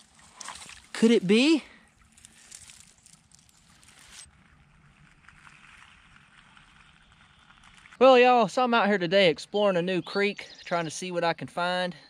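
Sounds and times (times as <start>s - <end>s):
leaf litter rustling: 0.0s - 4.4s.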